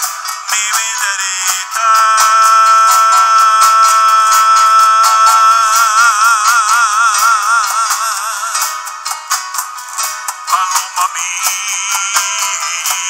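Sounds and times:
hand percussion beat: 0.0s - 13.0s
strummed guitar: 0.0s - 13.0s
long high held note: 1.8s - 8.5s.

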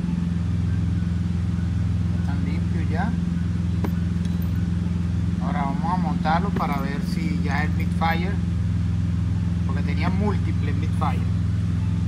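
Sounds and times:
engine drone: 0.0s - 12.0s
man speaking: 5.4s - 8.4s.

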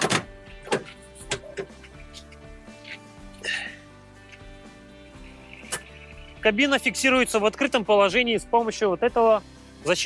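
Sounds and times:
metallic clicks and clunks: 0.0s - 3.0s
background music: 0.0s - 10.0s.

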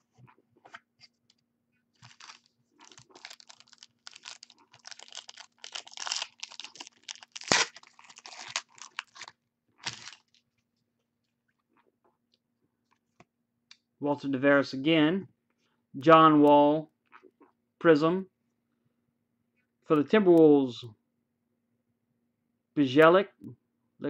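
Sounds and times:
foil wrappers crinkling: 2.0s - 10.4s.

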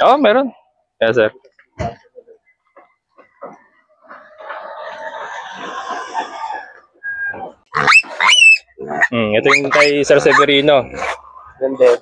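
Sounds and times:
chickens clucking: 1.8s - 12.0s
chicken squawking: 4.2s - 12.0s.

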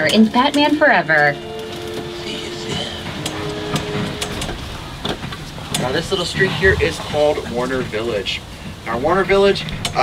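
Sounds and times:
tram rumbling: 0.0s - 10.0s.

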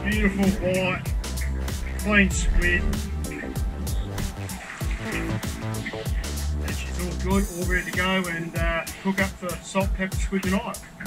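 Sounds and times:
electronic music with deep bass: 0.0s - 11.0s.

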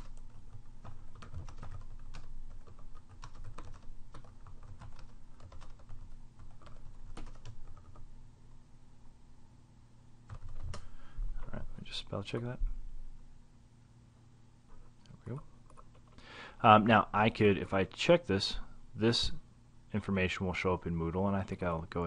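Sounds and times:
computer keyboard typing: 0.0s - 8.0s, 10.3s - 10.8s
low electrical hum: 0.0s - 22.0s.

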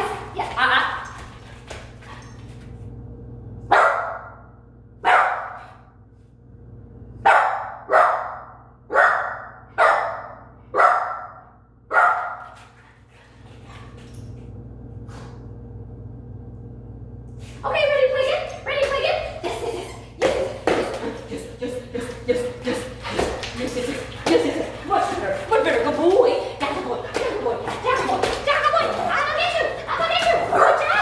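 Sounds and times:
puppy barking: 3.7s - 4.4s, 5.0s - 5.6s, 7.2s - 12.4s.

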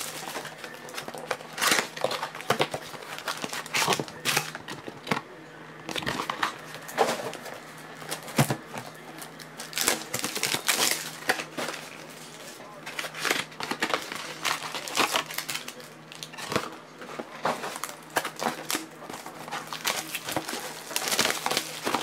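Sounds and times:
foil wrappers crinkling: 0.0s - 22.0s
steady low hum: 0.0s - 22.0s.

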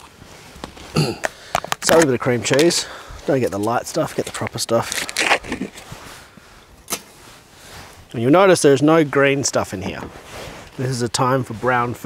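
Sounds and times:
faint outdoor background hiss: 0.0s - 12.0s.

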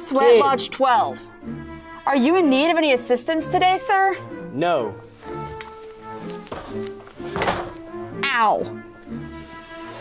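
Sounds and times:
background music: 0.0s - 10.0s
wooden door shutting: 6.5s - 7.9s.

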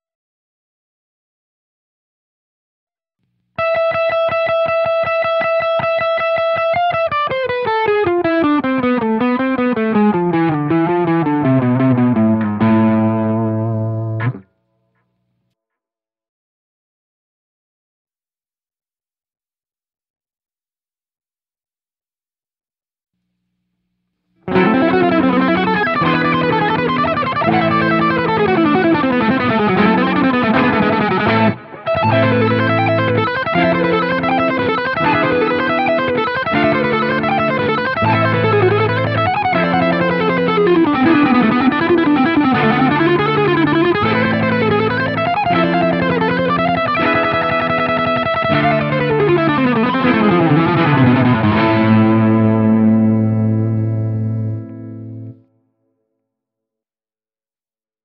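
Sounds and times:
distorted electric guitar lick: 3.6s - 14.5s, 24.4s - 55.4s.

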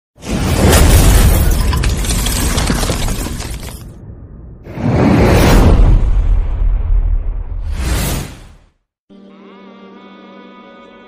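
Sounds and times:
thunder crack and rumble: 3.9s - 7.7s.

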